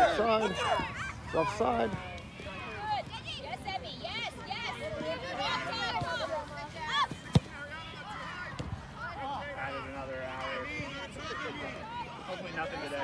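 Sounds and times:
people calling and shouting: 0:00.0 - 0:13.0.

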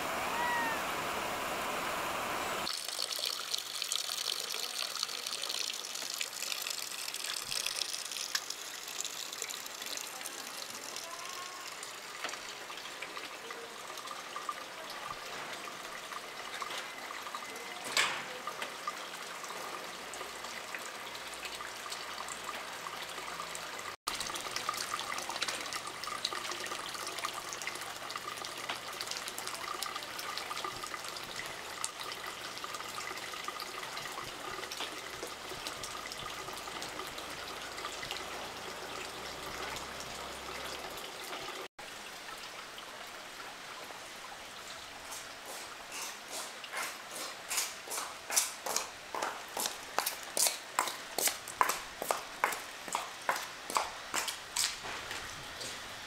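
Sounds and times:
water trickling and dripping: 0:02.6 - 0:55.8.

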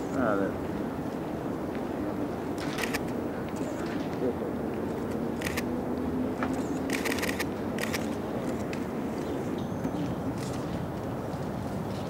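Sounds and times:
distant indistinct voices: 0:00.0 - 0:12.0
sharp clicks: 0:02.6 - 0:04.0, 0:04.9 - 0:05.7, 0:06.4 - 0:08.8.

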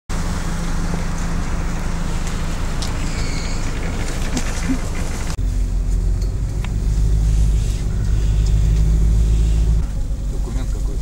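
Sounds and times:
bus engine rumbling: 0:00.1 - 0:11.0.

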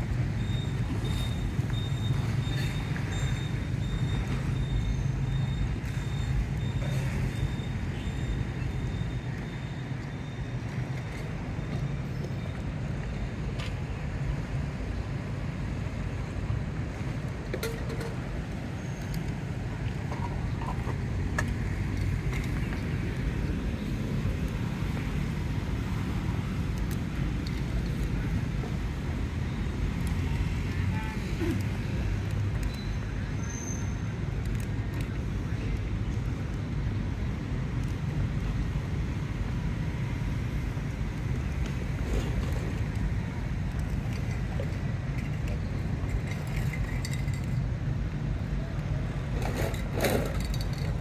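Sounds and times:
outdoor seafront rumble: 0:00.0 - 0:51.0.

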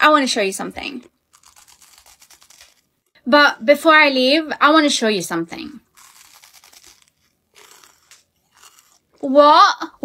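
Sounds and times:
mouth clicks and chewing: 0:05.9 - 0:09.2.

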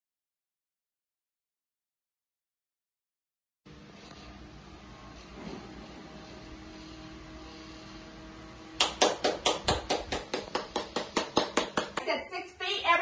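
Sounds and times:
electric fan humming: 0:03.7 - 0:13.0.

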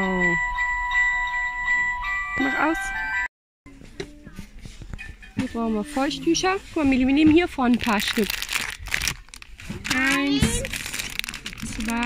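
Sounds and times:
electronic chime melody: 0:00.0 - 0:03.3.

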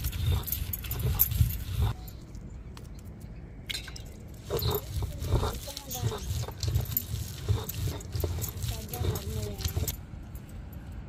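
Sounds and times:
stone roller grinding on stone: 0:00.0 - 0:02.0, 0:04.3 - 0:10.0.

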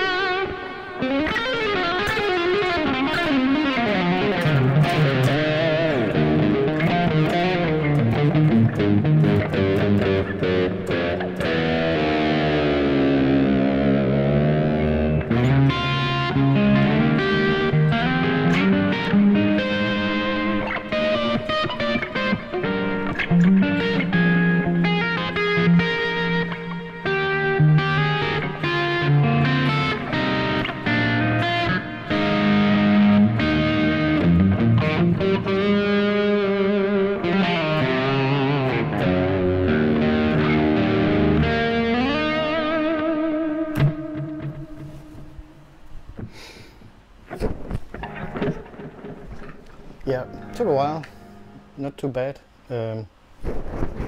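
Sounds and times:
overdriven electric guitar solo: 0:00.0 - 0:46.4, 0:47.3 - 0:51.8.

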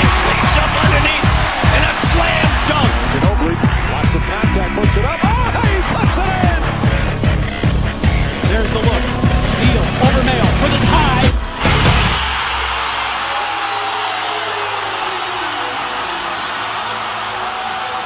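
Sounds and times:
arena crowd cheering: 0:00.0 - 0:07.2, 0:10.8 - 0:18.0
trailer music with heavy beat: 0:00.0 - 0:13.4.

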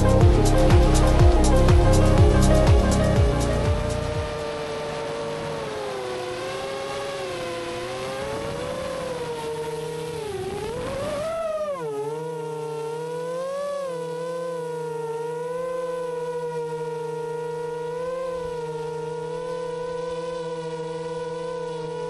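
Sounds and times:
drone propellers whining: 0:00.0 - 0:22.0.

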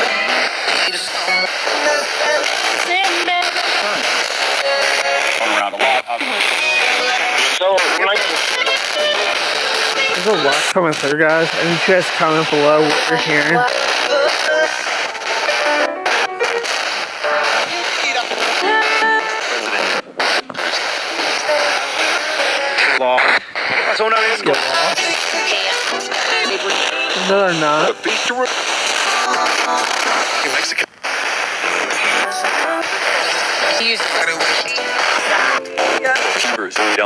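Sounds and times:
radio music snippets: 0:00.0 - 0:37.0
radio static rush: 0:00.0 - 0:37.0
radio voice snippets: 0:05.2 - 0:29.0, 0:30.2 - 0:37.0.

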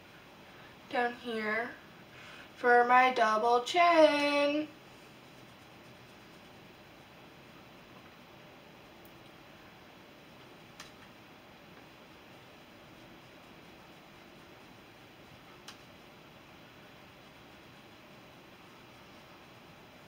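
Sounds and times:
faint room tone hiss: 0:00.0 - 0:20.0.

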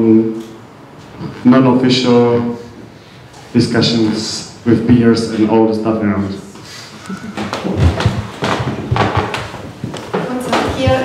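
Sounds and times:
microphone handling thumps and rustles: 0:07.1 - 0:11.0.

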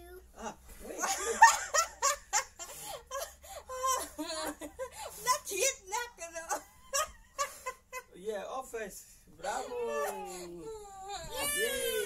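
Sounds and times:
child whining and crying: 0:09.7 - 0:12.0.

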